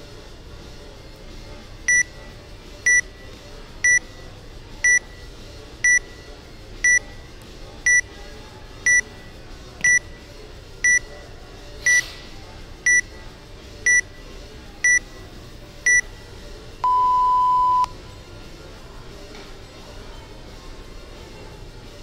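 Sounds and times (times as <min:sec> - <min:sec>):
long low beep: 0:16.8 - 0:17.9
short high beeps: 0:16.8 - 0:17.9.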